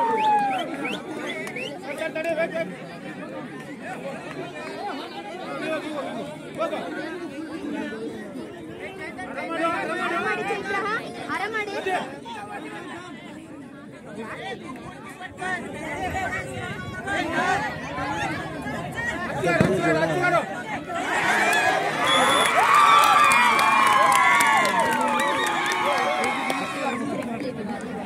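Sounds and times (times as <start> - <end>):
crowd chattering and calling out: 0.0 - 28.0.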